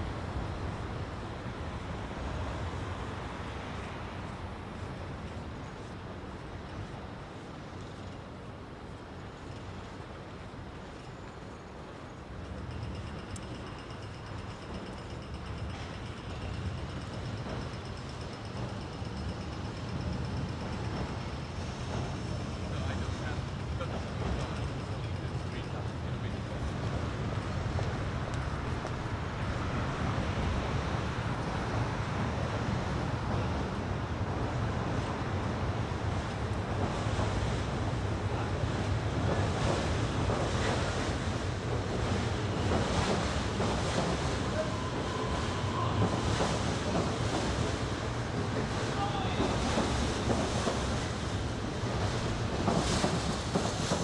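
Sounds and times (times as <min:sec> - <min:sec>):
low city rumble: 0:00.0 - 0:54.0.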